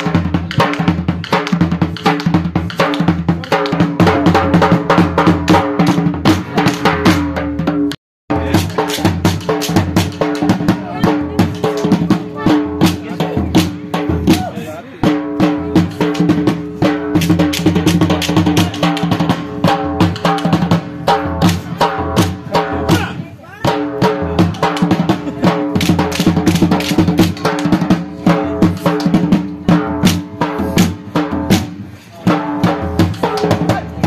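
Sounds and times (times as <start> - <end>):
fast dance music with dhol drumming: 0.0 - 34.0.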